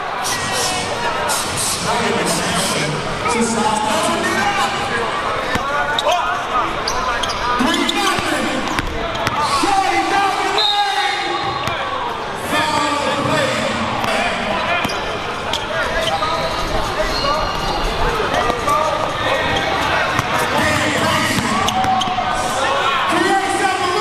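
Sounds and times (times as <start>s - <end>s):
chatter of many voices: 0.0s - 24.0s
basketball bouncing on wooden floor: 8.1s - 9.4s.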